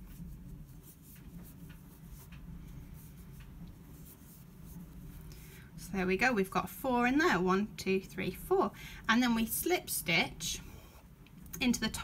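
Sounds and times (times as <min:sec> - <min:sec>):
yarn rustling over crochet hook: 0:00.0 - 0:06.4
low steady hum: 0:00.0 - 0:12.0.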